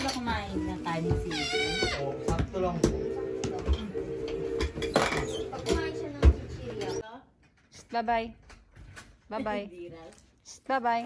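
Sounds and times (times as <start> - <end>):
background music: 0.0 - 7.0.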